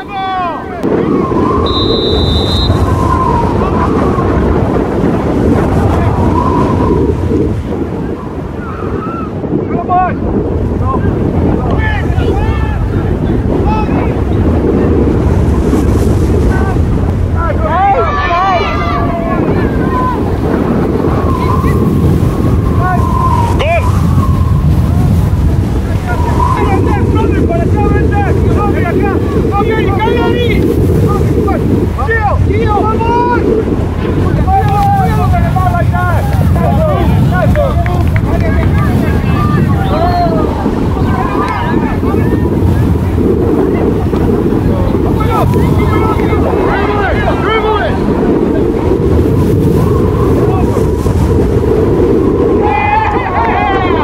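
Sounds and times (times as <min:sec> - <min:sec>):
wind buffeting microphone: 0:00.0 - 0:54.0
distant shouting voices: 0:16.6 - 0:25.1, 0:25.8 - 0:30.6, 0:34.3 - 0:43.0, 0:52.6 - 0:54.0.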